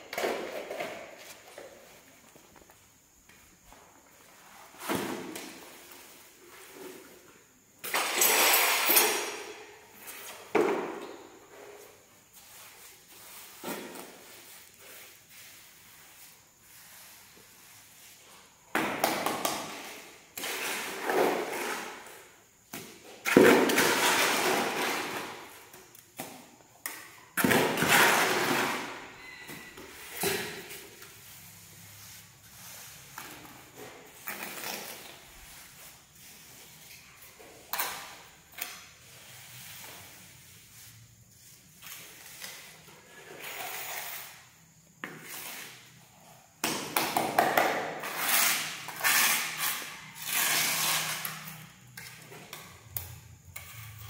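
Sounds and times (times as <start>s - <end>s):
trowel scraping wet mortar: 43.1s - 44.3s, 48.0s - 51.4s.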